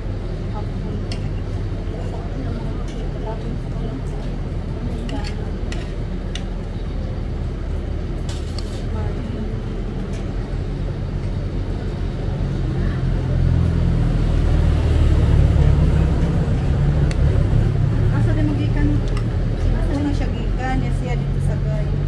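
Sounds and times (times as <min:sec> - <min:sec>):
bus engine rumble: 0:00.0 - 0:22.0.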